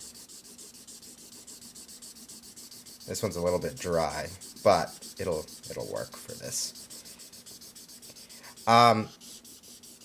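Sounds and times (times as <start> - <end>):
marker scratching on paper: 0.0 - 10.0.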